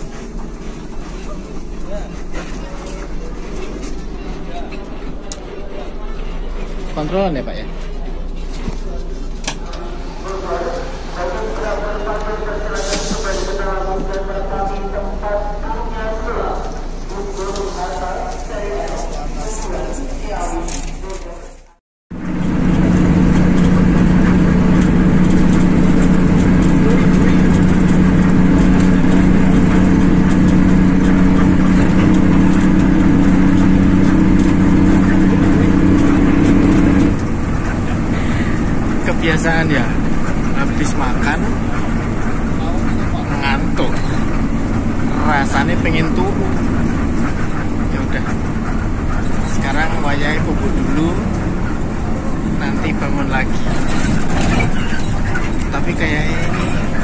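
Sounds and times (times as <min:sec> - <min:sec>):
bus engine and road drone: 0:00.0 - 0:57.0.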